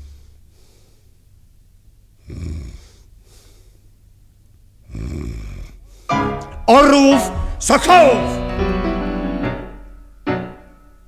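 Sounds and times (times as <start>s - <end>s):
faint breaths: 0.0s - 1.4s, 2.2s - 4.1s, 4.8s - 6.2s
man snoring: 2.2s - 3.1s, 4.8s - 5.9s.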